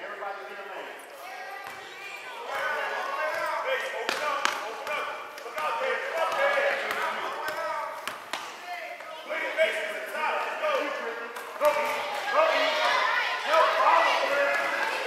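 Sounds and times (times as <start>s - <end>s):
indistinct shouting and chatter: 0.0s - 15.0s.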